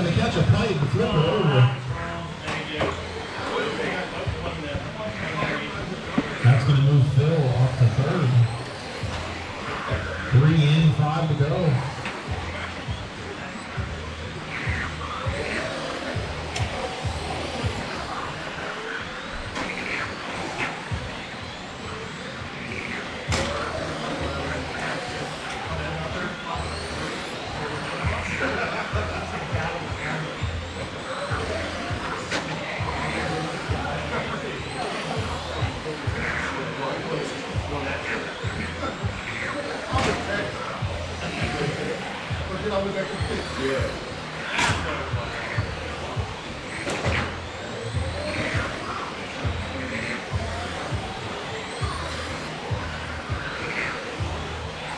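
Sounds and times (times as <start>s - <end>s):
rc car motors whining: 0.0s - 54.9s
steady low hum: 0.0s - 54.9s.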